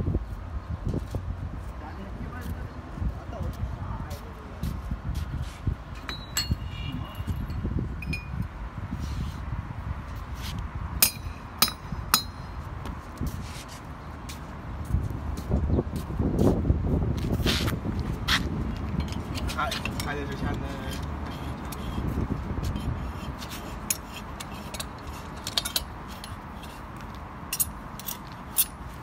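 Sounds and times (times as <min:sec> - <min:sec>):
metal parts clinking: 0:23.9 - 0:28.8.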